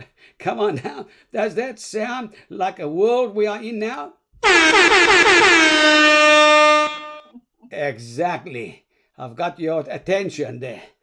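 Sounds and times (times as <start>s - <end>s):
air horn blast: 4.4s - 7.3s.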